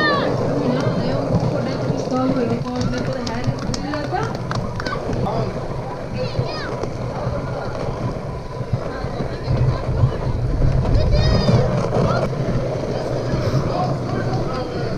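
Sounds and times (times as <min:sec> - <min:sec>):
spectators shouting and cheering: 0:00.0 - 0:14.9.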